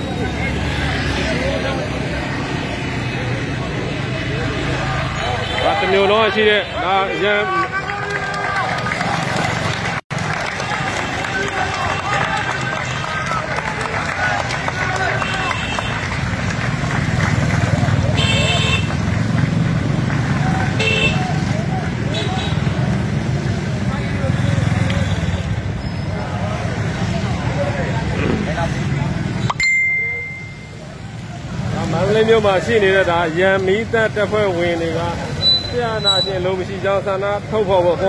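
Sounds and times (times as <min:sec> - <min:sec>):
people's voices: 0:00.0 - 0:38.0
vehicle engines rumbling: 0:00.0 - 0:38.0.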